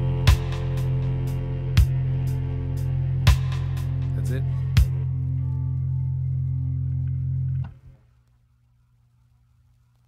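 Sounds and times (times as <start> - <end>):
guitar and bass chord ringing: 0.0 - 7.9.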